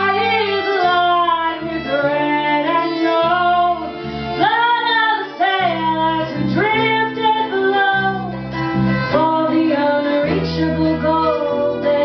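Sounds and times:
woman singing: 0.0 - 8.4, 9.1 - 12.0.

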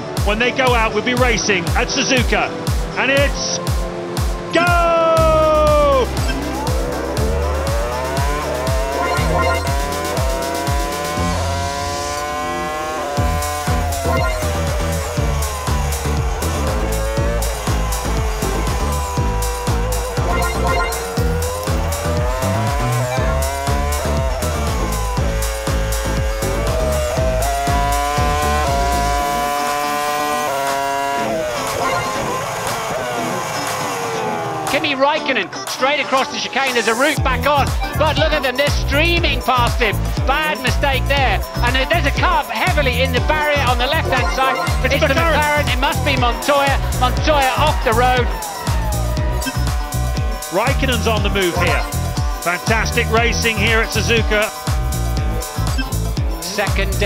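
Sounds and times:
music with heavy bass: 0.0 - 35.0, 35.6 - 57.0
racing car engine screaming: 4.5 - 57.0.

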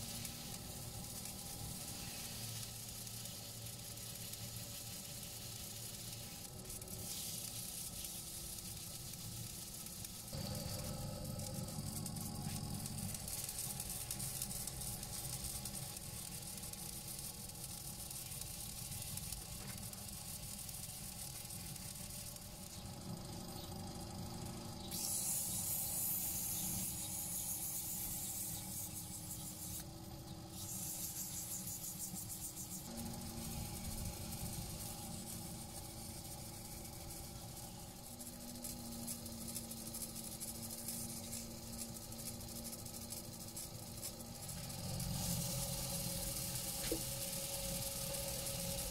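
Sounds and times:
paper towel rubbing spinning wood: 0.0 - 23.0, 30.5 - 48.9.

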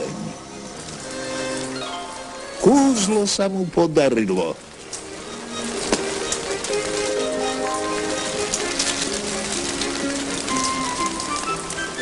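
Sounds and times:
film score melody: 0.0 - 12.0
steady pouring rain: 0.0 - 12.0.

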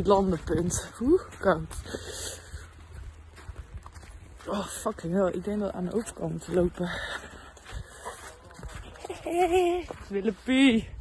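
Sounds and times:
footsteps in snow: 0.0 - 11.0.

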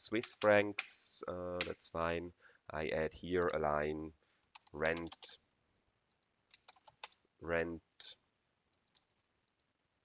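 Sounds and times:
computer mouse clicks: 6.1 - 7.2.

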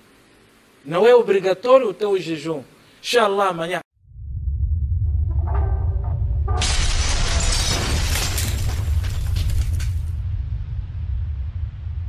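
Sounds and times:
deep rumble: 4.0 - 12.0
crash of shattering debris: 6.6 - 10.2.

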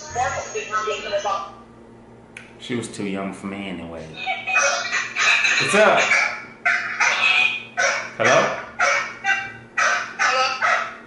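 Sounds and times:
animal calling: 5.9 - 11.0.

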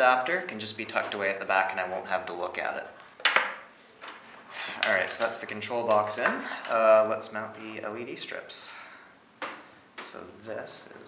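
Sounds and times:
man speaking: 0.0 - 3.0, 4.8 - 9.0, 10.0 - 11.0.

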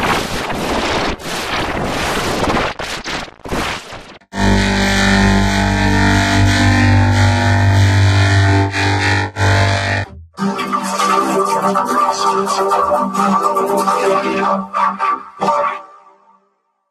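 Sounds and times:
loud rushing static noise: 0.0 - 8.6
electronic drone chord: 4.3 - 11.5.

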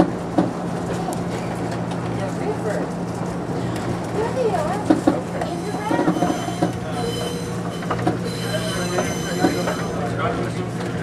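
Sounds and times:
train wheels squealing on rail: 5.4 - 10.2.

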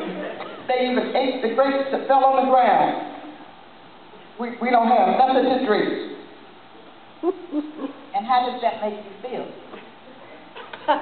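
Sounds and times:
person making low wordless sounds: 7.2 - 8.1.

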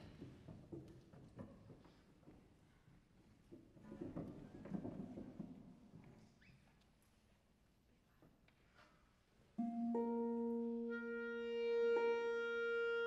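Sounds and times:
plucked harp notes: 9.6 - 12.1
clarinet playing: 9.6 - 13.0.

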